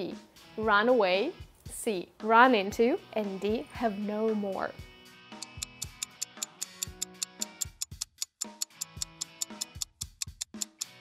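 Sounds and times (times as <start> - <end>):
clock-like ticking: 5.4 - 11.0.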